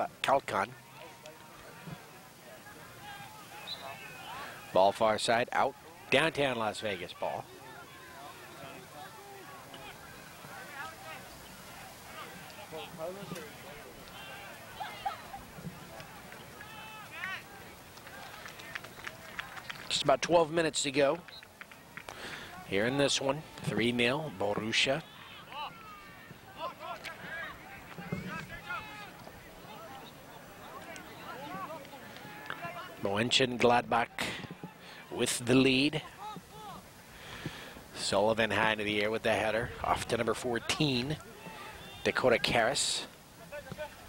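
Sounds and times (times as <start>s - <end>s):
distant shouts from players: 0.6s - 5.0s, 5.7s - 19.7s, 21.8s - 33.0s, 41.1s - 42.4s.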